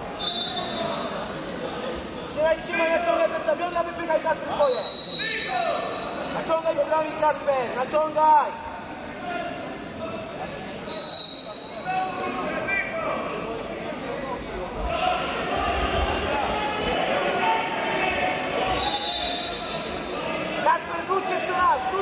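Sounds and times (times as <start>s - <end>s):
crowd voices and shouts: 0.0s - 22.0s
whistle blast: 0.2s - 1.0s, 4.6s - 6.2s, 10.9s - 11.9s, 18.8s - 19.9s.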